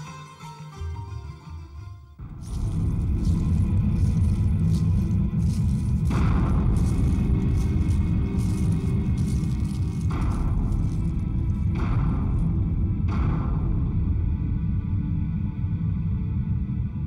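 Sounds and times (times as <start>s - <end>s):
low percussion rumble: 2.2s - 17.0s.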